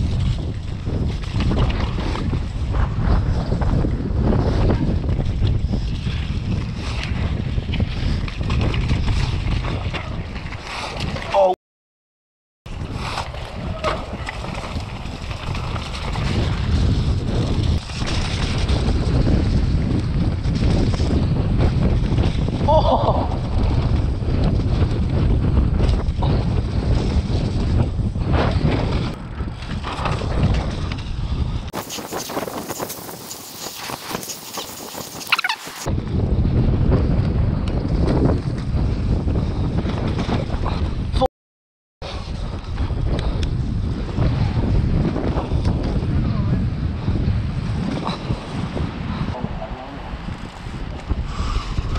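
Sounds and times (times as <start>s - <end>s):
bike rattling and knocking: 0.0s - 10.4s, 12.7s - 35.2s
bike tyre rumble: 0.0s - 11.5s, 12.7s - 41.3s, 42.0s - 51.9s
wind buffeting microphone: 0.0s - 11.5s, 12.7s - 41.3s, 42.0s - 51.9s.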